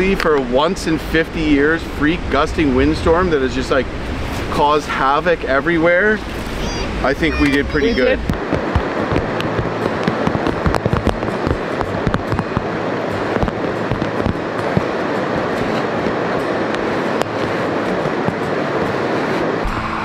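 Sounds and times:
river water rushing: 0:00.0 - 0:20.0
wind rushing: 0:01.2 - 0:20.0
tent nylon crackling: 0:07.7 - 0:19.6.

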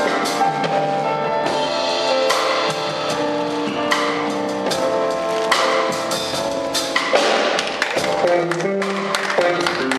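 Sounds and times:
drum kit with cymbal strikes: 0:00.0 - 0:08.4.

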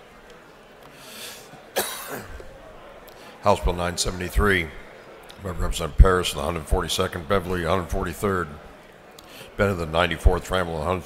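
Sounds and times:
man breathing: 0:00.9 - 0:01.6, 0:09.2 - 0:09.6
man coughing: 0:01.8 - 0:02.4.

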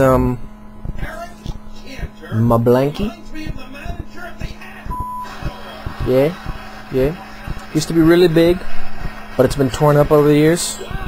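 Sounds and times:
low electrical hum: 0:00.0 - 0:11.0
short electronic beep: 0:04.9 - 0:05.3.

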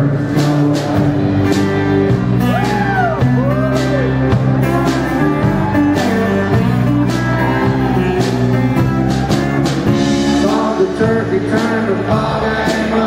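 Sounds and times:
country band playing: 0:00.0 - 0:13.0
drum beats: 0:00.0 - 0:13.0.

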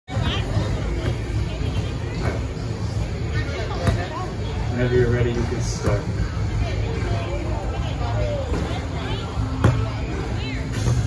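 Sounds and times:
basketball bouncing: 0:00.1 - 0:02.6, 0:03.7 - 0:04.1
crowd chatter: 0:00.1 - 0:11.0.

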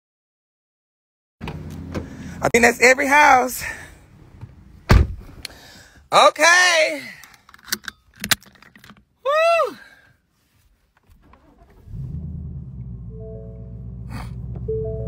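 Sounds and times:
car engine starting and idling: 0:01.4 - 0:02.9, 0:11.1 - 0:15.0
person shouting woo: 0:09.2 - 0:09.8
held musical notes: 0:12.8 - 0:15.0.

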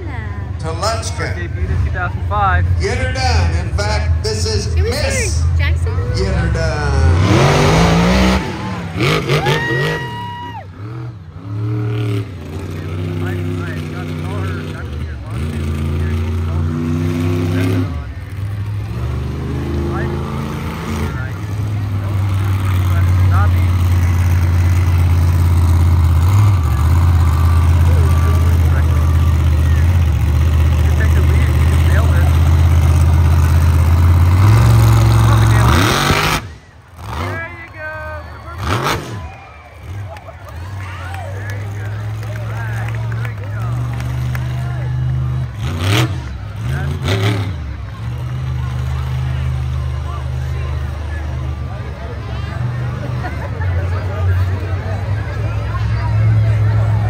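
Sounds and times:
truck engine revving: 0:00.0 - 0:57.0.

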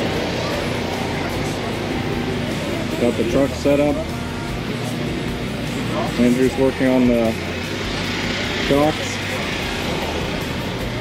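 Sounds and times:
vehicle engines droning: 0:00.0 - 0:11.0.

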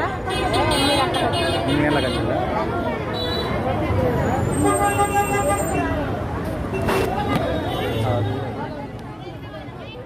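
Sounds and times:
crowd voices: 0:00.0 - 0:10.0
street traffic: 0:00.0 - 0:10.0.

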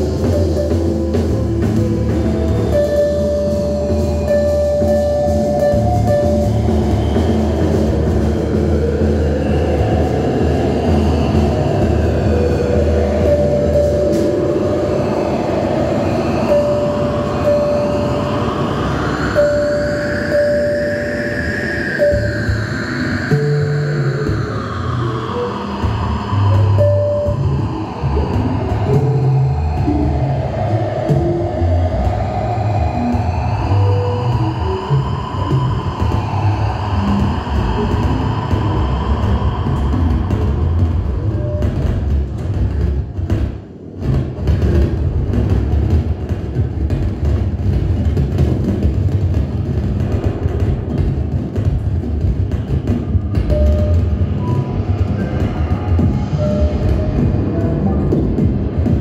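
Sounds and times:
gliding electronic tones: 0:00.0 - 0:39.1
low rumbling electronic texture: 0:00.0 - 0:59.0.

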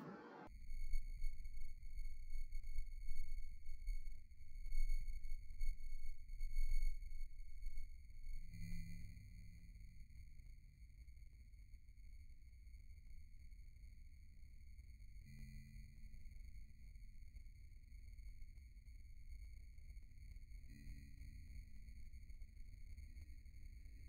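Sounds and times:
high-pitched whine: 0:00.0 - 0:12.3.

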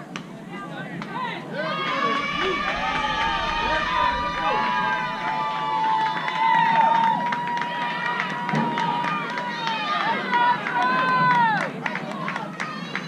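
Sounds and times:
voices yelling: 0:01.2 - 0:11.7.

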